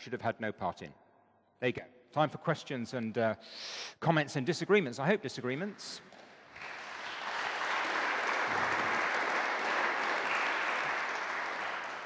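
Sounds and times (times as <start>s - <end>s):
audience applauding: 6.4s - 12.0s.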